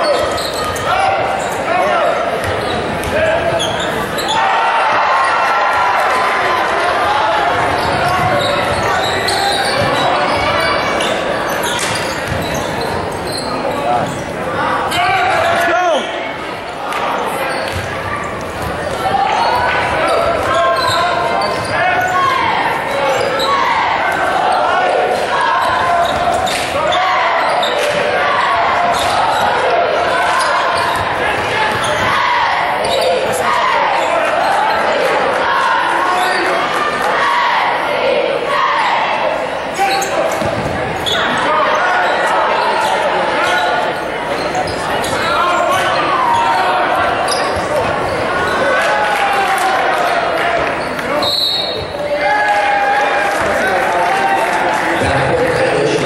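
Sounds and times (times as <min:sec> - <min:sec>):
crowd voices and shouts: 0:00.0 - 0:56.0.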